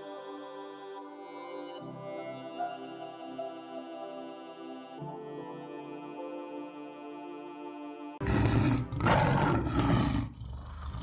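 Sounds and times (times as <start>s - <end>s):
soft ambient music: 0.0s - 11.0s
loud rough roaring: 8.2s - 11.0s.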